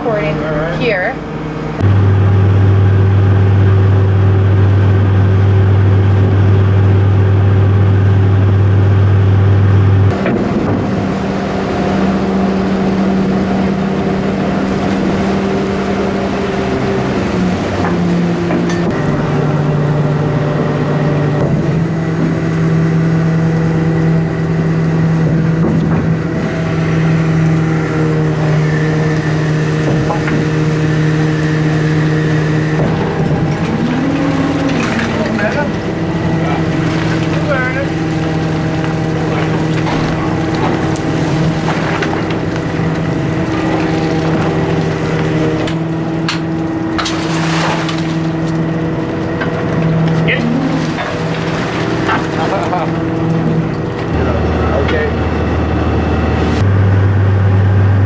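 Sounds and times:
boat engine droning: 0.0 - 58.0
hydraulics steady tones: 0.0 - 58.0.

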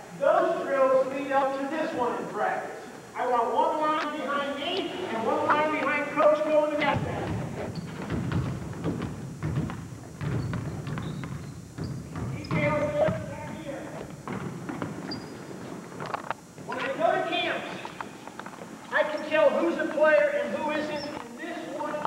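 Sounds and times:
people talking: 0.2 - 7.7, 12.1 - 14.1, 16.6 - 18.0, 18.9 - 22.0
basketballs bouncing on hardwood floor: 6.8 - 15.3.

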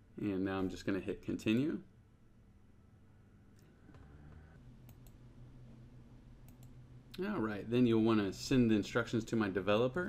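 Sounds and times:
faint low hum: 0.0 - 10.0
computer mouse clicks: 3.6 - 5.2, 6.4 - 6.8.

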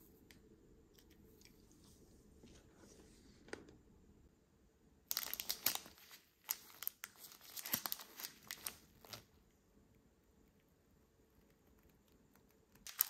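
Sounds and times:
plastic packet crackling: 5.1 - 9.3.

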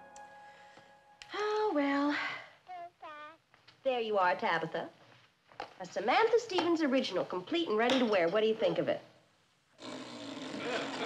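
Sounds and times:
baby blowing a raspberry: 9.8 - 11.0.

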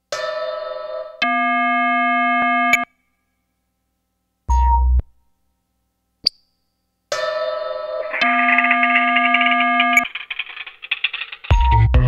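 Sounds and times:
synthesizer chords: 8.0 - 10.4.

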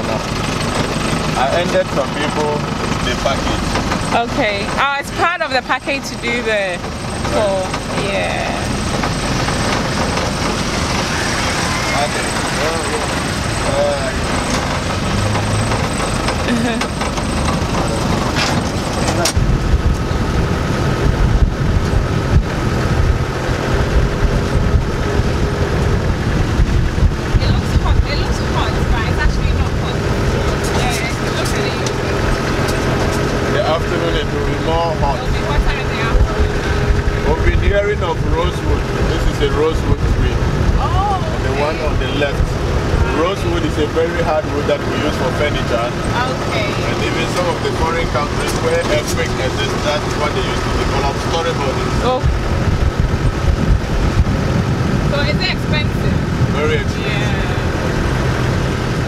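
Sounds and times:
jeep engine hum: 0.0 - 59.0
rumbling road noise and rattles: 0.0 - 59.0
wind buffeting microphone: 2.6 - 59.0.

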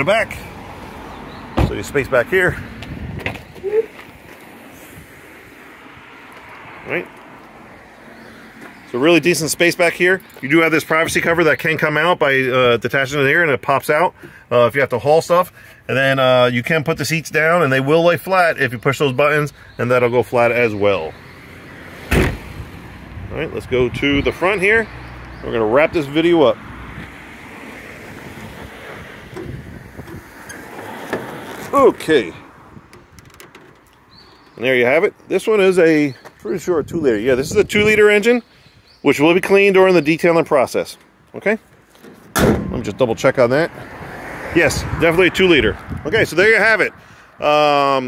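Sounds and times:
faint outdoor background noise: 0.0 - 48.0
wind on microphone: 2.5 - 3.8, 28.0 - 30.5, 32.6 - 33.3, 36.6 - 38.1, 43.8 - 46.4.

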